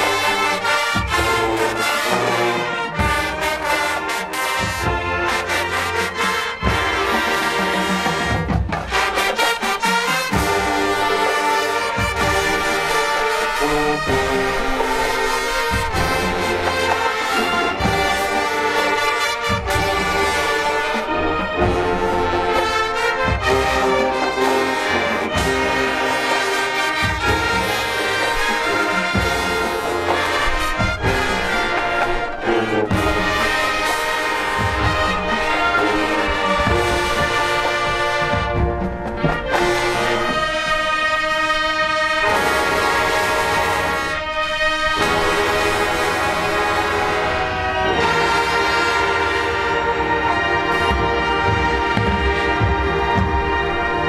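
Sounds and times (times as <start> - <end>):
drum beat: 0.0 - 41.4, 50.7 - 54.0
marching band brass: 0.0 - 54.0.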